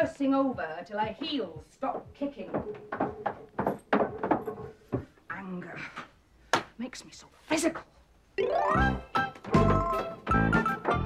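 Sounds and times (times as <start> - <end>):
footsteps on wooden stairs: 1.0 - 5.2.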